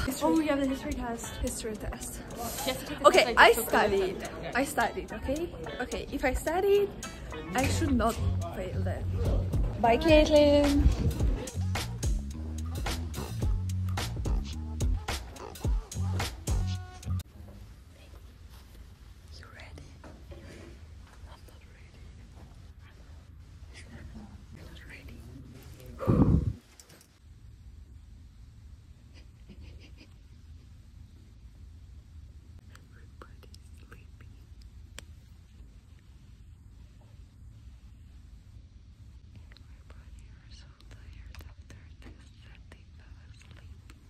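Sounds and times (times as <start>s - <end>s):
low room hum: 0.0s - 44.0s
person whispering: 19.3s - 20.1s, 21.2s - 22.2s, 23.7s - 26.6s, 32.6s - 34.6s, 39.3s - 44.0s.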